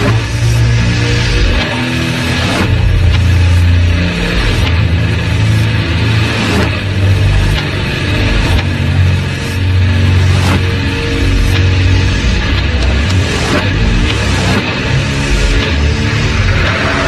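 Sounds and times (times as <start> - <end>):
distorted guitar and bass: 0.0 - 17.0.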